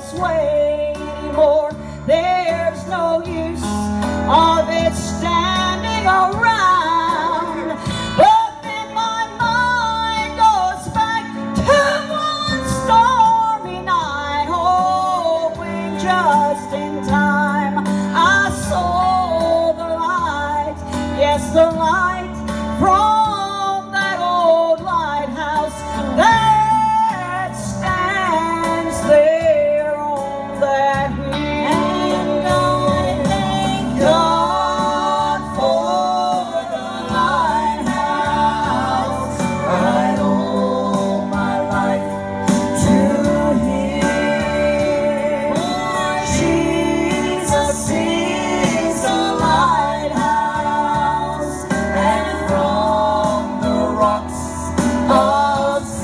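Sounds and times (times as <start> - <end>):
woman singing gospel: 0.0 - 56.0.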